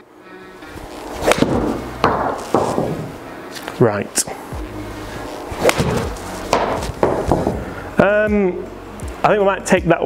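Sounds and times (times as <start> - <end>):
golf club striking ball: 1.2 - 3.2, 5.6 - 7.6
knocks: 6.5 - 7.6.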